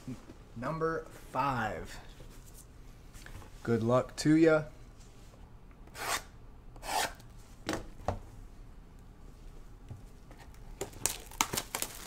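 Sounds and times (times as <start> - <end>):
plastic wrap scratched and torn: 10.8 - 12.0.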